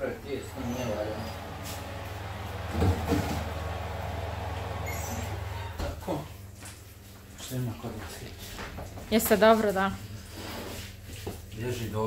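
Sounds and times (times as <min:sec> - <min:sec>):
oven humming: 0:00.0 - 0:06.2.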